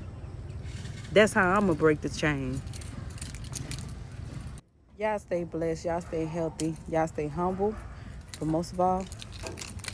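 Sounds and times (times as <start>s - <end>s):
small metal pieces jingling: 1.6s - 4.6s, 8.1s - 9.9s.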